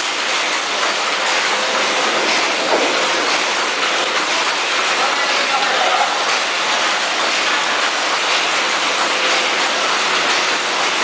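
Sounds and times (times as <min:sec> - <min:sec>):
packaging machine running: 0:00.0 - 0:11.0.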